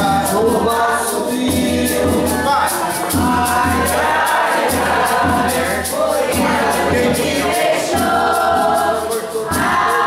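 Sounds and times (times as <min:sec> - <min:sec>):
drum beat: 0:00.0 - 0:10.0
metal tube shaker: 0:00.0 - 0:10.0
several voices singing folk song: 0:00.0 - 0:10.0.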